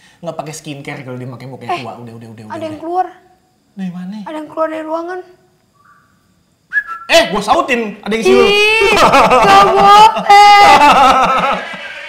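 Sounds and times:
short whistle falling in pitch: 6.7 - 7.1.

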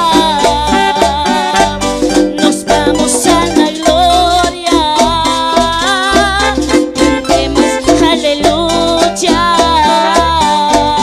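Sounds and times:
keyboard band accompaniment: 0.0 - 11.0
woman singing into a microphone: 0.0 - 11.0.

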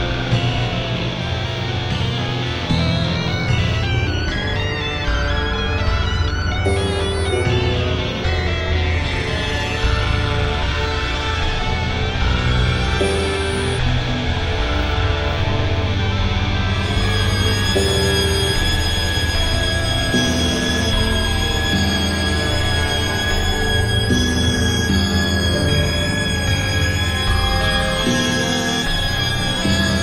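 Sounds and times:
synthesizer drone: 0.0 - 30.0
long-held high synth tones: 12.4 - 14.2, 16.8 - 30.0.

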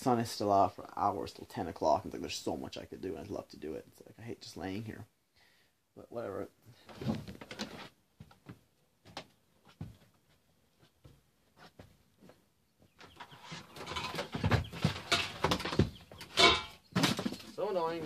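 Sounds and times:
scraping and rustling: 6.8 - 8.0, 9.6 - 18.0
household items knocking and clicking: 13.8 - 17.5.

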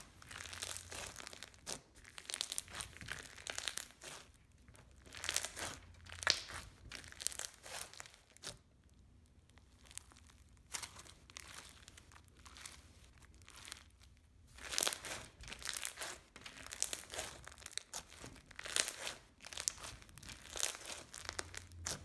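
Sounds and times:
crunchy slime being squeezed: 0.0 - 22.0.

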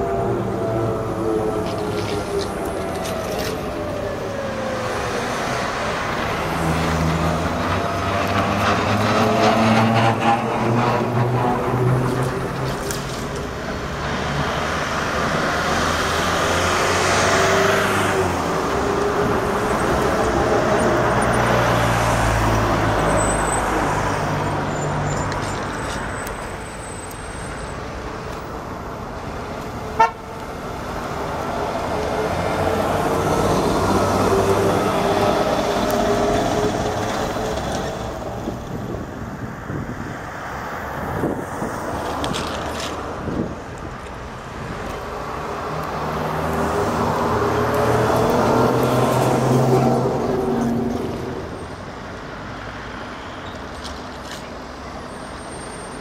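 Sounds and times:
street traffic passing: 0.0 - 56.0.

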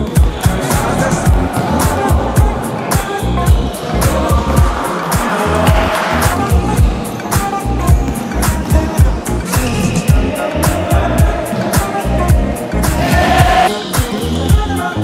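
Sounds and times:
instrumental beat with heavy bass: 0.0 - 15.0.

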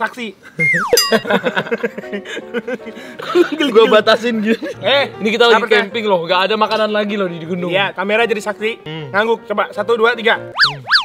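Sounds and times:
men laughing: 0.5 - 4.8.

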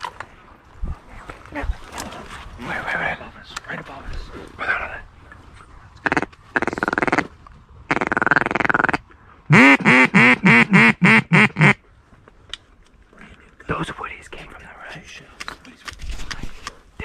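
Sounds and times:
duck call quacks: 7.9 - 11.8.

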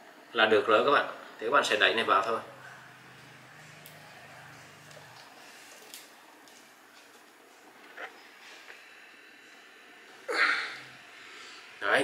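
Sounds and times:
low hum: 1.8 - 11.8.

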